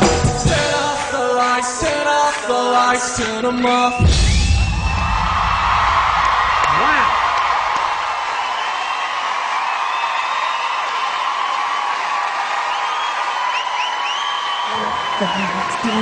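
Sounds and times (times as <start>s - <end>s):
audience cheering and screaming: 4.0s - 16.0s.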